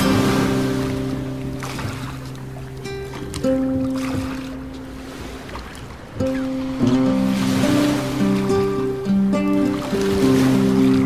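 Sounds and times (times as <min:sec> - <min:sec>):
held chord-like music notes: 0:00.0 - 0:05.0, 0:06.2 - 0:11.0.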